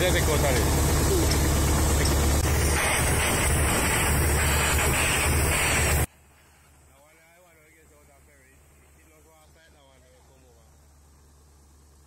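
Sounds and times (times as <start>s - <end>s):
excavator diesel engine running: 0.0s - 6.1s
rushing noise: 2.4s - 6.1s.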